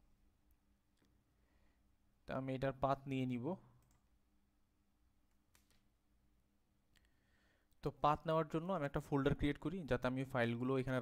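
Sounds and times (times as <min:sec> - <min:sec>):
man speaking: 0:02.2 - 0:03.8, 0:07.8 - 0:11.0
computer mouse click: 0:03.8 - 0:04.1, 0:05.3 - 0:05.9.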